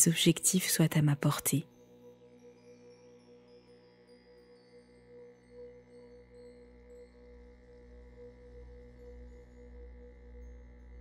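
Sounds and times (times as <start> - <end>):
ambient meditation music: 0.0 - 11.0.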